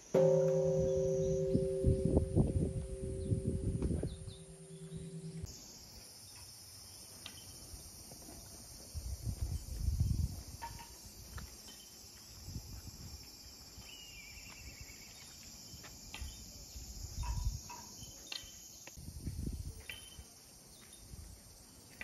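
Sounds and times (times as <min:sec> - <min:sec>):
high-pitched insect chorus: 0:00.0 - 0:22.0
low thumps and rumbles: 0:00.5 - 0:05.5.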